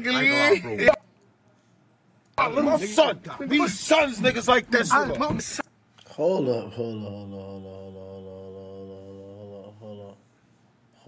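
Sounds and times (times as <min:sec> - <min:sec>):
man singing long low note: 0:06.5 - 0:10.2.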